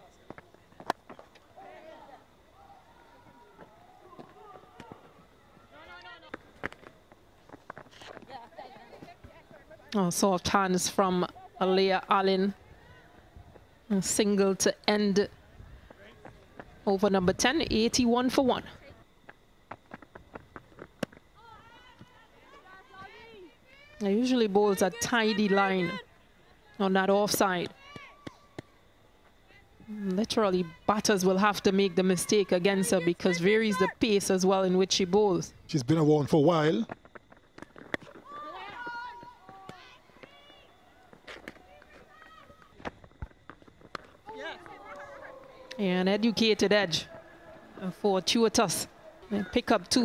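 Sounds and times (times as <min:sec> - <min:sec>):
distant raised voices calling: 0:00.0 - 0:07.3, 0:43.6 - 0:50.0
faint shouts of players: 0:01.5 - 0:06.3, 0:38.1 - 0:42.8, 0:44.2 - 0:48.0.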